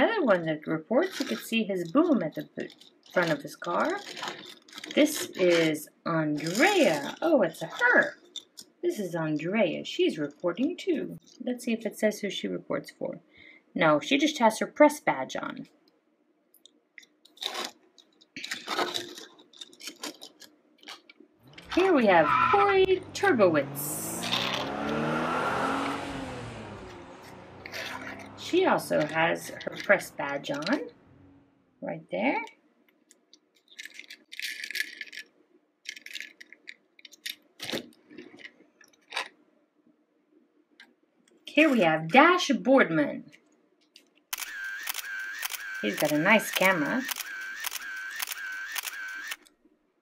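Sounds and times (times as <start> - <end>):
toy cars clicking and rattling: 0.3 - 8.8, 17.0 - 22.2, 24.0 - 24.6, 26.9 - 30.9, 33.0 - 39.3, 43.9 - 49.5
toy car clicks: 1.0 - 5.7, 6.4 - 8.7, 44.4 - 49.5.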